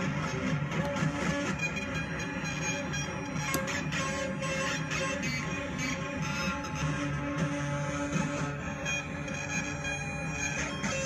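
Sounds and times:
synthesizer drone: 0:00.0 - 0:11.0.

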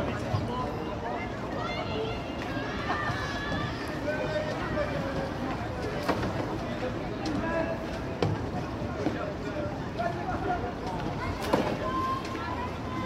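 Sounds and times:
distant people talking: 0:00.0 - 0:13.0.

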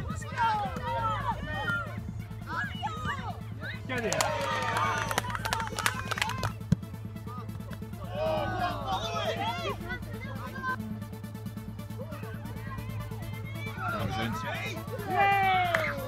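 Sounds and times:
people shouting outdoors: 0:00.0 - 0:06.5, 0:08.0 - 0:10.8, 0:11.9 - 0:16.0.

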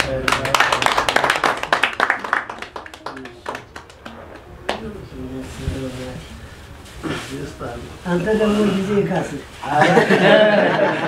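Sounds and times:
quick hand clapping: 0:00.0 - 0:04.9.

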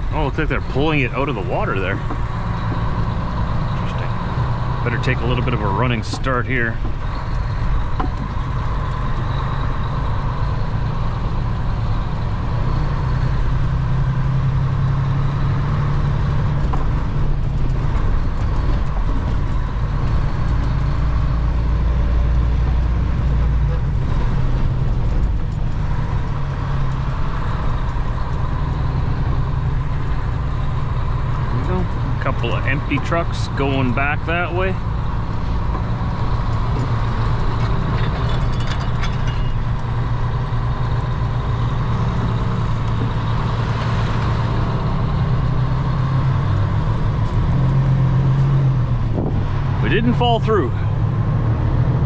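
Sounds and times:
truck diesel engine pulling hard: 0:00.0 - 0:52.0.

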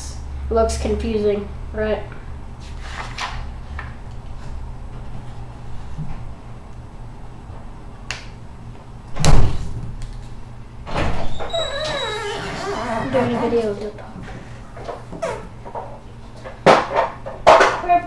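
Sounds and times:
paper rustling and creasing: 0:02.7 - 0:03.9.

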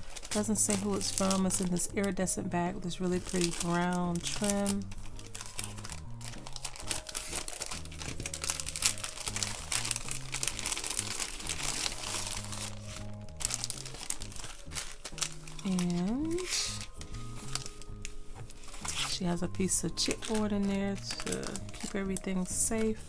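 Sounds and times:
cellophane bag crinkling: 0:00.0 - 0:23.0.

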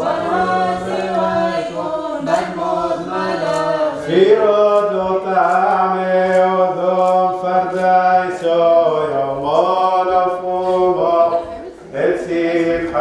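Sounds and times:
man chanting a hymn: 0:02.6 - 0:13.0.

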